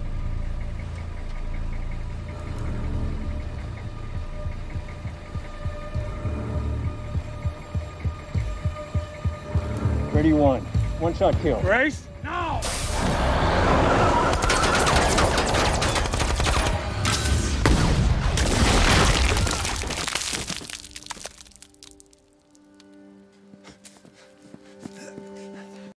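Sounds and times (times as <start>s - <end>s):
rapid gunfire with crackling impacts: 14.3s - 20.1s.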